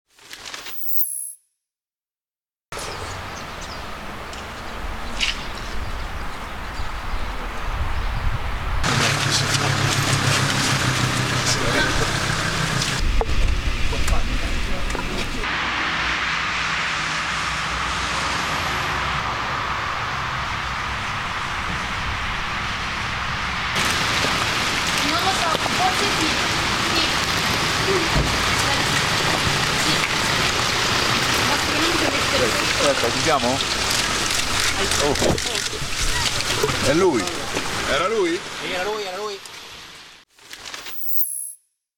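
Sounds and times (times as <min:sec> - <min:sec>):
car engine running: 0:08.8 - 0:15.4
car tyres swishing on wet road: 0:08.8 - 0:39.9
rain hissing: 0:08.8 - 0:41.2.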